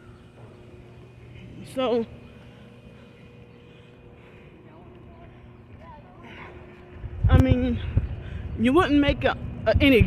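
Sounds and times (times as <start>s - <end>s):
faint hum: 0.0s - 10.0s
traffic rumble: 0.0s - 10.0s.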